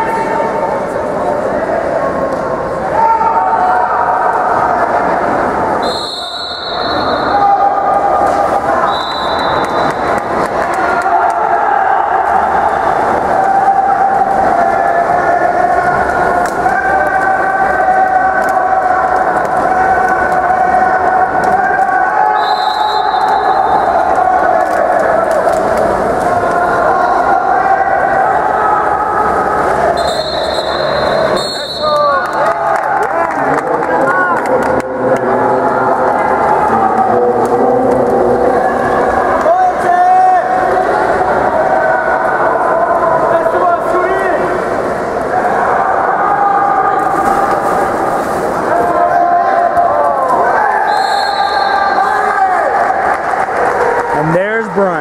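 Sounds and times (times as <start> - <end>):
spectators shouting and cheering: 0.0 - 55.0
referee whistle blasts: 5.8 - 7.4, 8.8 - 10.1, 22.3 - 23.9, 30.0 - 32.1, 50.9 - 52.0.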